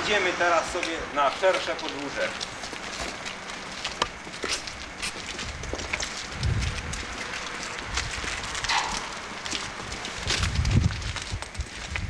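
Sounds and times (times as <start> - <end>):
footsteps walking: 0.1 - 12.0
shoes scuffing: 1.9 - 12.0
low rumble on microphone: 3.6 - 12.0.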